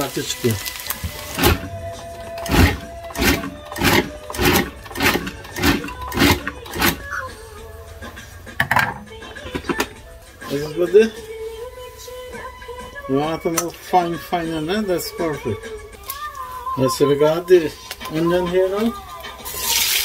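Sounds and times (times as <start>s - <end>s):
food processor pulsing: 1.0s - 7.1s.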